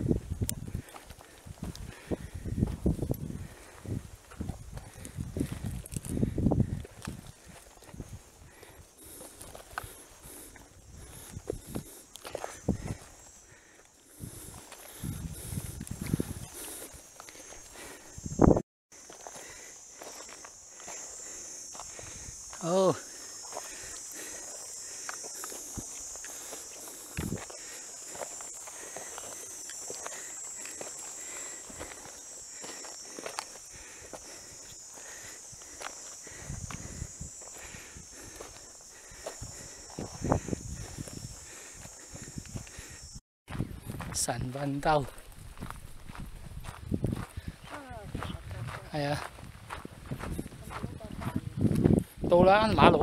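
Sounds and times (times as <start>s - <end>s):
footsteps on sandy dirt trail: 0.0s - 53.0s
high-pitched insect drone: 0.0s - 53.0s.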